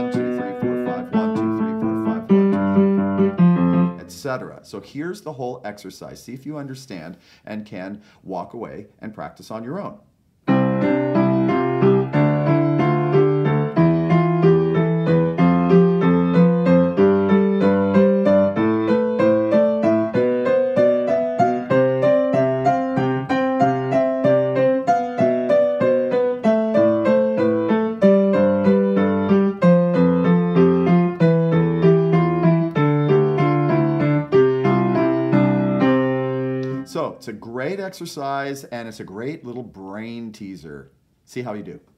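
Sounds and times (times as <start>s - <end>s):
piano playing scales: 0.0s - 4.4s, 10.4s - 37.1s.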